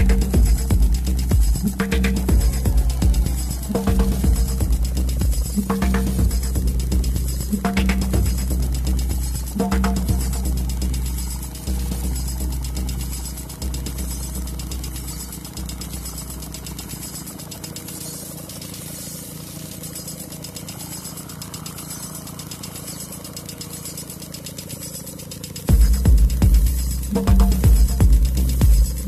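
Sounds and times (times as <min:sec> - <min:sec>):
deep bass notes: 0:00.0 - 0:16.9, 0:25.7 - 0:29.0
electronic dance music: 0:00.0 - 0:29.0
fast ticking percussion: 0:00.0 - 0:29.0.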